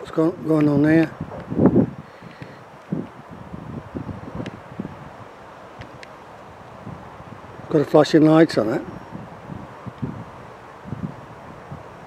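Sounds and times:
wind on microphone: 0.0s - 12.0s
man's voice: 7.7s - 8.9s.

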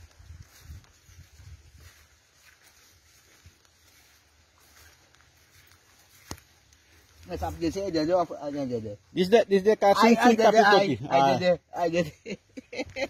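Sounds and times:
plants rustling: 0.0s - 8.8s
footsteps on dirt path: 0.0s - 9.1s.

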